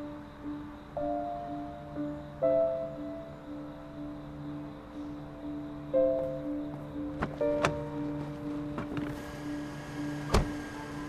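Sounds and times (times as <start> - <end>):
soft background music: 0.0 - 11.0
car door shutting: 7.2 - 9.4, 10.2 - 10.8.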